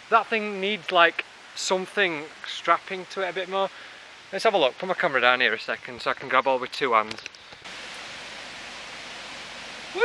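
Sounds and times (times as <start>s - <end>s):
steady rushing hiss: 0.0s - 10.0s.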